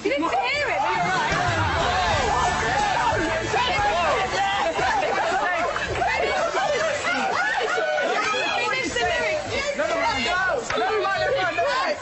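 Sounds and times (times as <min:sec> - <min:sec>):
group chatter: 0:00.0 - 0:12.0.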